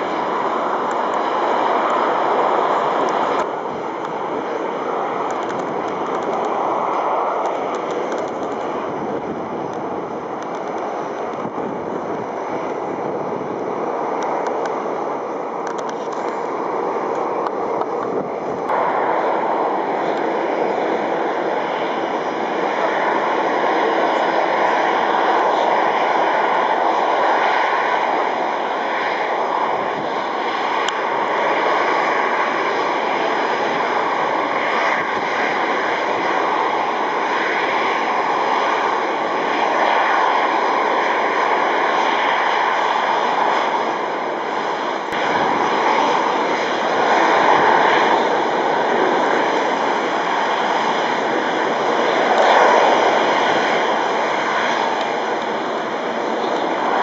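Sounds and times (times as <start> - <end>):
jet engines at taxi power: 0.0 - 57.0.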